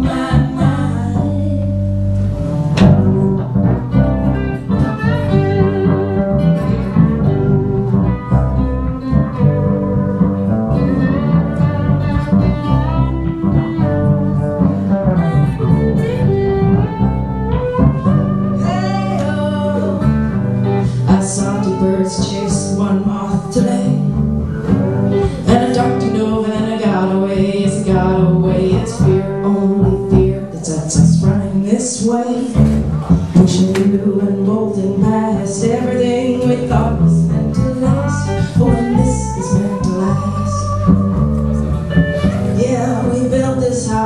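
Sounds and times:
electric bass guitar: 0.0s - 44.0s
lap steel guitar sliding: 0.1s - 44.0s.

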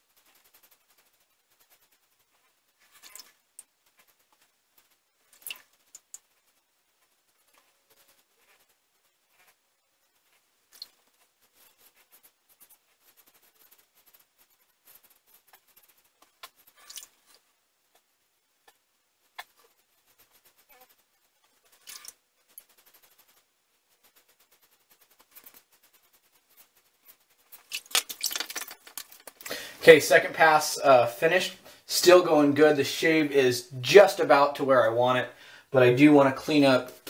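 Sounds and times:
hands rubbing over face: 22.5s - 30.7s.

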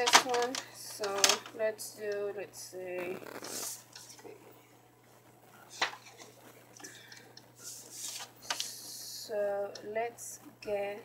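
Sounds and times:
paper rustling: 7.6s - 8.6s.

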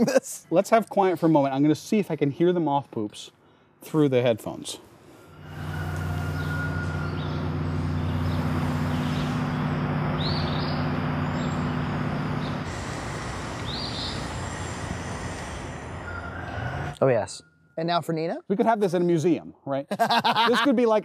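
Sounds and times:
bird chirping: 5.3s - 12.7s, 13.6s - 14.8s
low engine hum: 5.4s - 17.0s.

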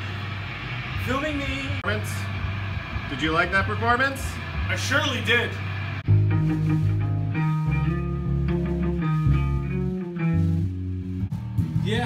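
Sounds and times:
bass guitar notes: 0.0s - 12.0s.

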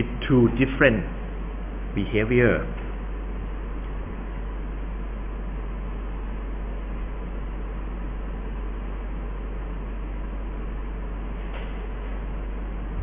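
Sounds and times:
strong low hum: 0.0s - 13.0s.

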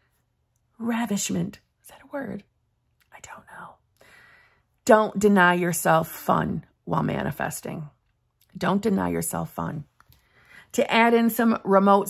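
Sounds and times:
woman speaking: 0.8s - 2.5s, 4.9s - 9.9s, 10.7s - 12.0s
woman whispering: 1.0s - 3.8s
breath: 4.0s - 4.7s, 10.1s - 10.7s.

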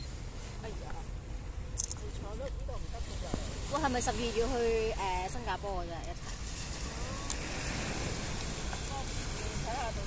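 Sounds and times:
waves breaking on beach: 0.0s - 10.0s
wind noise on microphone: 2.2s - 10.0s.

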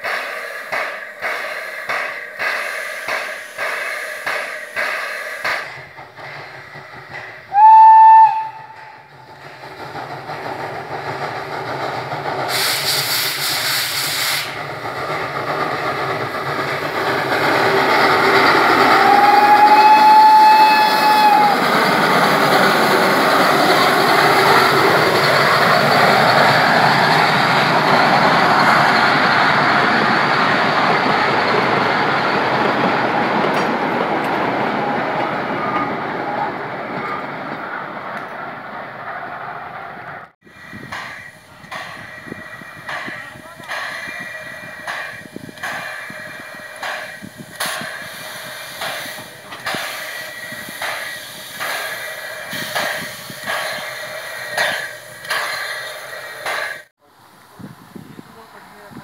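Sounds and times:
steam engine working: 0.0s - 36.4s, 40.4s - 59.0s
steam locomotive whistle: 7.5s - 9.0s, 18.8s - 21.7s.

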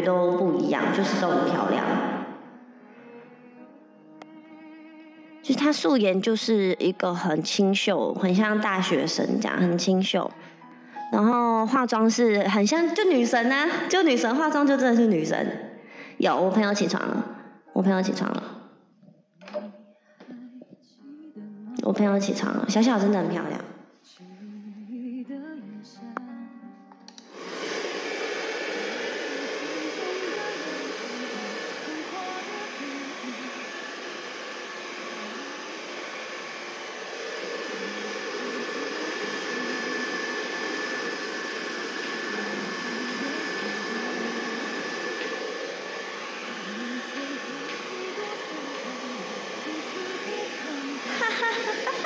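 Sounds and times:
electric blower motor whooshing: 0.0s - 2.3s, 27.2s - 52.0s
high motor whine: 27.2s - 52.0s.

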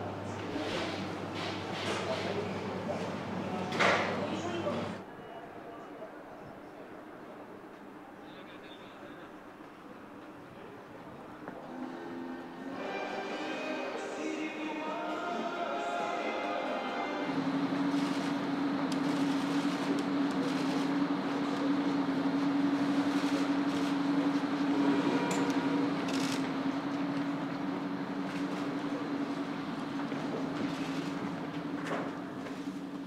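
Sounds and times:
bus engine humming: 14.6s - 33.0s.

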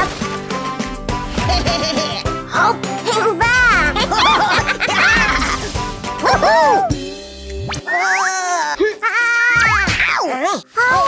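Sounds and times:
cartoon background music: 0.0s - 11.0s
high-pitched cartoon yelps: 3.7s - 7.0s, 7.8s - 11.0s.

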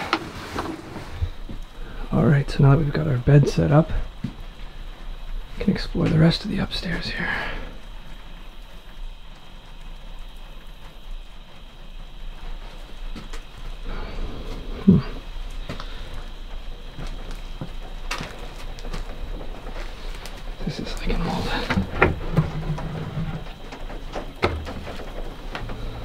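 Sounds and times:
steady background hiss: 0.0s - 26.0s
footsteps on wooden floor: 4.1s - 4.8s, 15.6s - 20.6s
person murmuring hmm: 14.7s - 15.2s.

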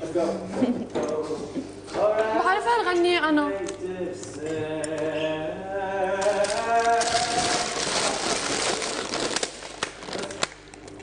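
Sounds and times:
packaging crinkling: 6.1s - 11.0s.

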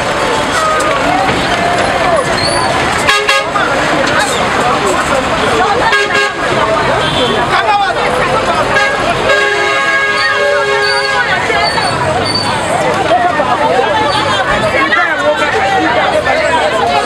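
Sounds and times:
people talking loudly: 0.0s - 17.0s
vehicle horns honking: 3.0s - 3.8s, 5.8s - 7.6s, 8.6s - 12.4s.

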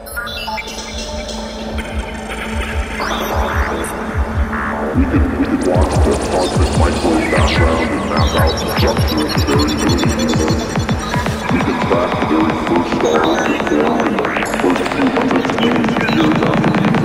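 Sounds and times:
electronic synth leads: 0.0s - 17.0s
psytrance music: 0.0s - 17.0s
kick drum and bassline: 1.2s - 17.0s.

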